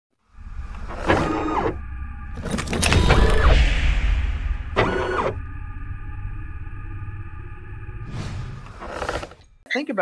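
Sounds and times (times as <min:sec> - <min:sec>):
motor-like whir: 0:00.6 - 0:01.8.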